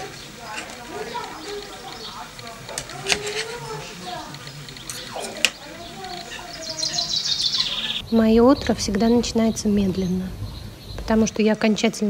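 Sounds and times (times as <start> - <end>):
songbird trilling: 0.0 - 11.5.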